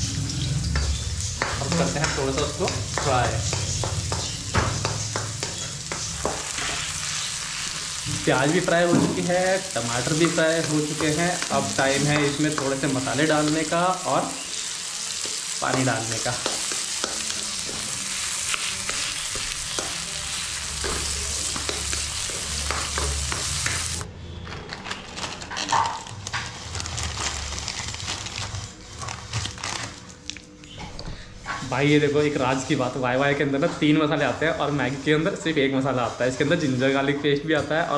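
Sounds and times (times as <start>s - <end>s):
onions sizzling in hot oil: 0.0s - 24.0s.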